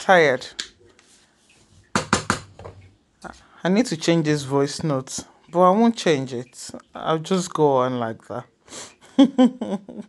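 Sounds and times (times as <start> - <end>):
spoon knocking on metal pot: 1.9 - 2.8.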